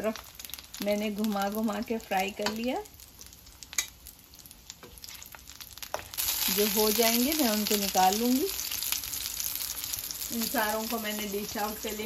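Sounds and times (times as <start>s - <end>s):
faint sizzle of frying: 0.0s - 12.0s.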